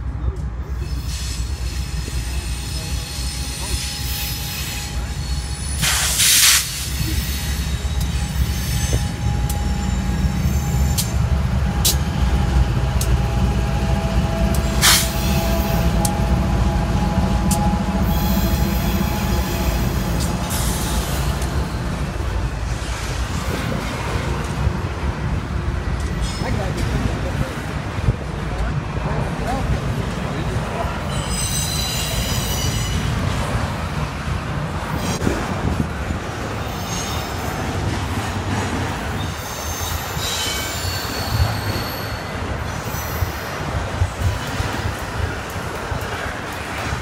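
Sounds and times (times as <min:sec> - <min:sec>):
diesel locomotive rumbling: 0:00.0 - 0:47.0
train wheels rolling on rails: 0:00.0 - 0:47.0
thin wheel squeal: 0:00.8 - 0:11.1, 0:31.1 - 0:33.1.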